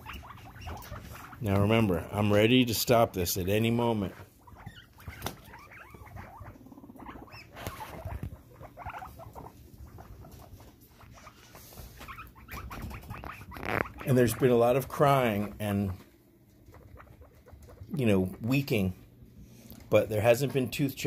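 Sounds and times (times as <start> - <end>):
guinea pigs crying and squeaking: 0.0 - 19.0.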